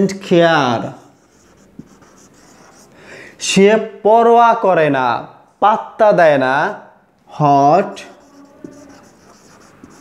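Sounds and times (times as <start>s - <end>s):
marker pen writing on whiteboard: 0.8s - 3.0s, 8.0s - 10.0s.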